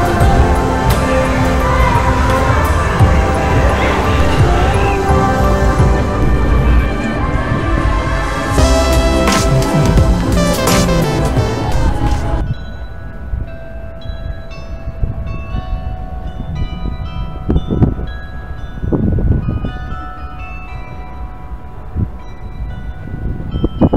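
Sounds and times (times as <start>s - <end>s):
fairground music with bell tones: 0.0s - 7.3s, 8.5s - 23.9s
low rumble: 0.0s - 10.6s
loud fairground ride music: 0.0s - 12.4s.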